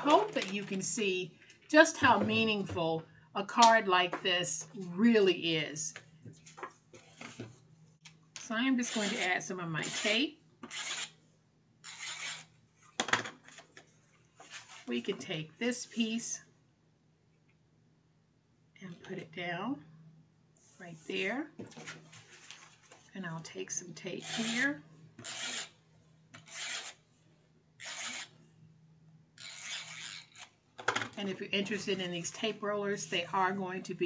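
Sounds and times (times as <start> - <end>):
tape runner rasping on cardstock: 27.8 - 28.3.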